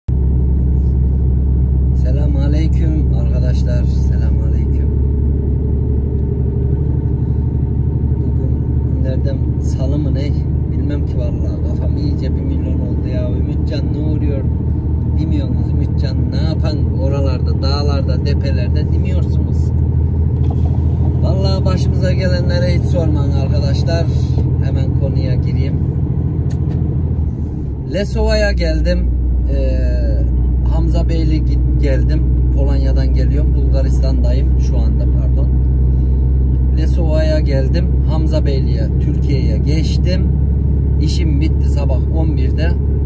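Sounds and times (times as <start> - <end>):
diesel engine droning: 0.1 - 43.0.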